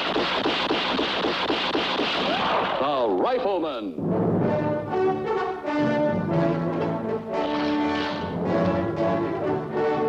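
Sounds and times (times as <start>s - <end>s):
rifle shots in rapid succession: 0.0s - 2.9s.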